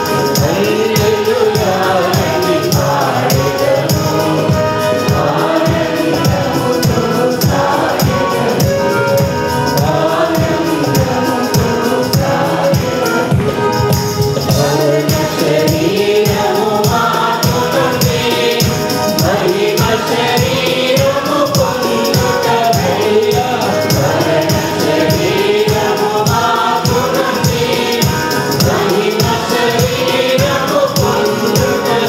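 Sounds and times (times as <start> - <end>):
choir singing a hymn: 0.0 - 32.0
electronic keyboard: 0.0 - 32.0
steady percussion beat: 0.0 - 32.0.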